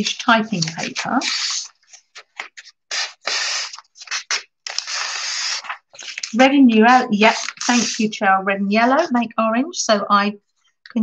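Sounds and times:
thin paper rustling: 0.0 - 8.2, 8.8 - 9.2.

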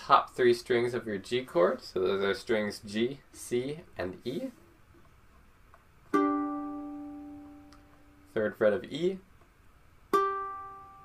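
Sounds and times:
ukulele note plucked: 6.1 - 8.3, 10.1 - 11.0.

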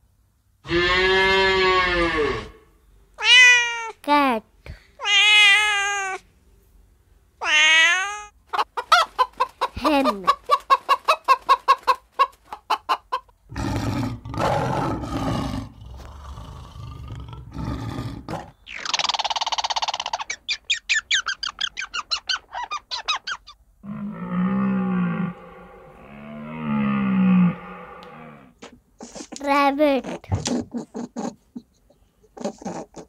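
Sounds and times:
harsh noisy animal calls: 0.6 - 3.4, 21.4 - 28.6
hens clucking: 8.4 - 13.4
squirrel chattering: 18.7 - 23.6
long low animal calls: 23.8 - 28.6.

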